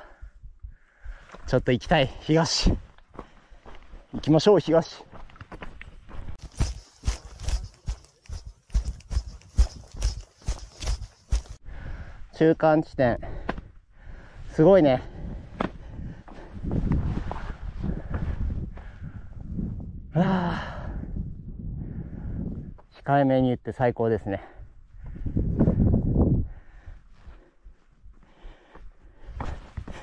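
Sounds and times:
footsteps on gravel: 2.9 - 11.6
man sighing: 20.1 - 21.2.

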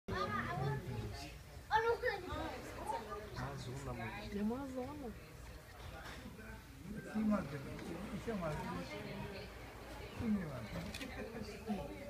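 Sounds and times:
children talking and calling out: 0.1 - 3.5.

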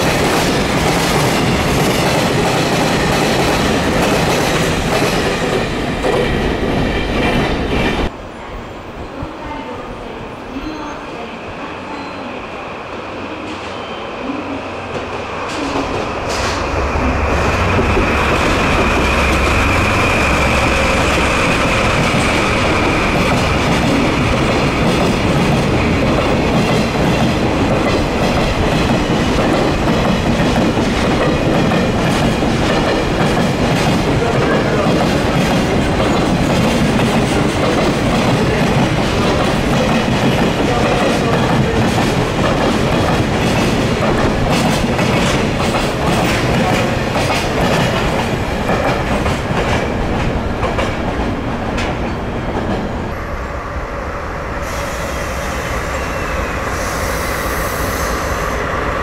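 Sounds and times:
diesel locomotive passing: 0.0 - 59.0.

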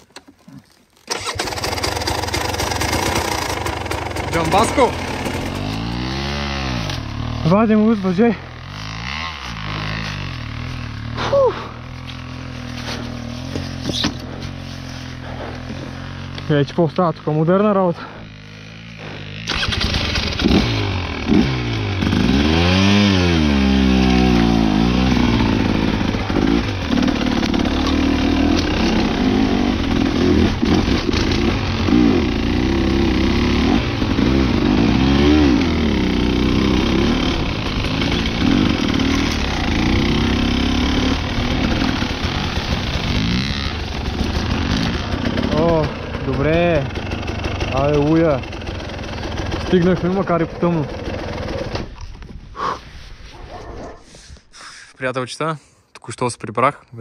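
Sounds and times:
dirt bike engine revving: 1.1 - 51.9.

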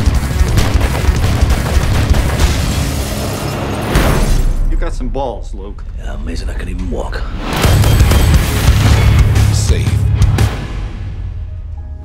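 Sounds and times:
sharp hits and impacts: 0.0 - 4.9, 7.4 - 11.2
action trailer score: 0.0 - 12.0.

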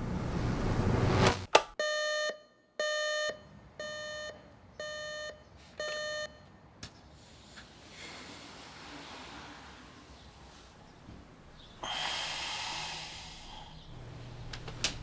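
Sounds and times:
alarm clock beeping: 1.8 - 6.4.

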